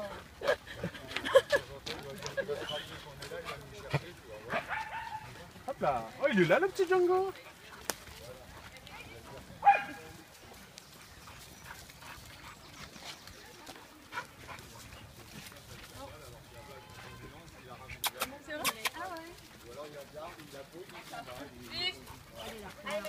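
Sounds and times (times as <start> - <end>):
dogs playing: 0.0 - 23.0
dog barking: 4.5 - 5.3, 9.6 - 10.1.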